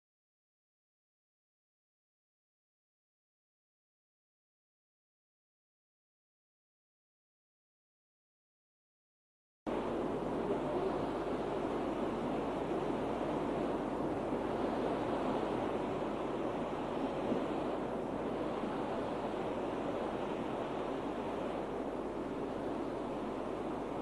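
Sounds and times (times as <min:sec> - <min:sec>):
steady rushing noise: 0:09.7 - 0:24.0.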